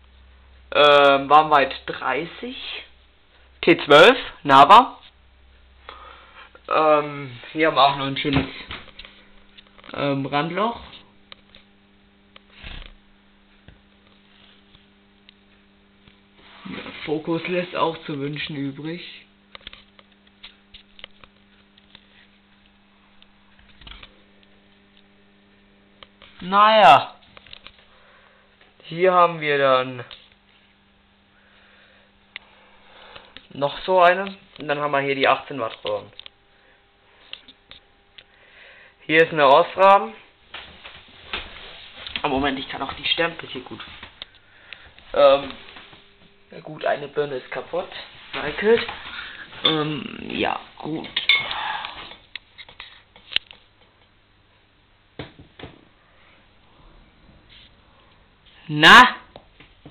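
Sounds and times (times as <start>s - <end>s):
faint mains hum: 0.0s - 59.9s.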